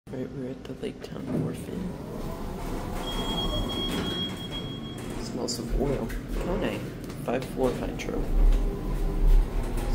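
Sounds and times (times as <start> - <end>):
elevator doors sliding open: 1.4 - 6.8, 7.6 - 9.9.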